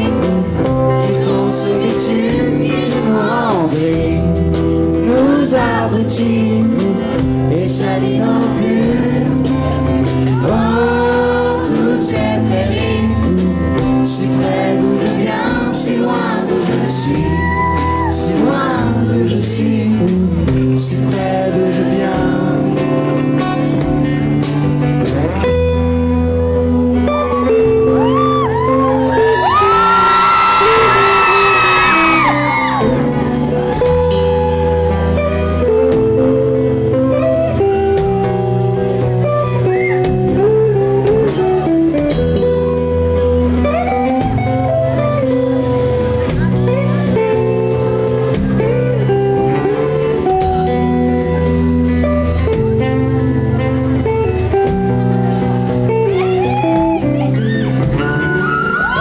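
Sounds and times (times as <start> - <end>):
live band electric guitars: 0.0 - 59.0.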